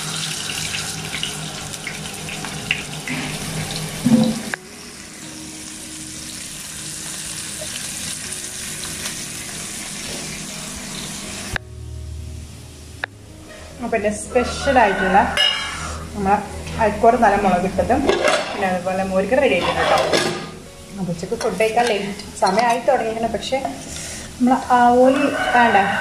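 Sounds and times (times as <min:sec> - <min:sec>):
fish sizzling in oil: 0:00.0 - 0:11.7, 0:13.8 - 0:16.4, 0:20.6 - 0:26.0.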